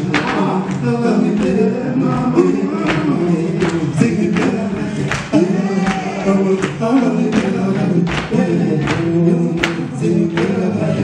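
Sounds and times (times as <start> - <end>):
male vocal group singing in harmony: 0.0 - 11.0.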